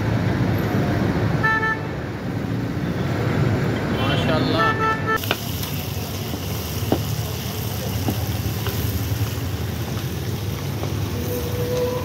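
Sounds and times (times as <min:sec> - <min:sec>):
meat sizzling in hot oil: 0:05.2 - 0:12.0.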